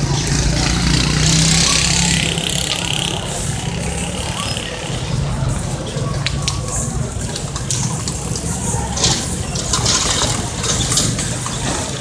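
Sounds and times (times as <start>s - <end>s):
people's voices: 0.0s - 12.0s
rushing outdoor noise: 0.0s - 12.0s.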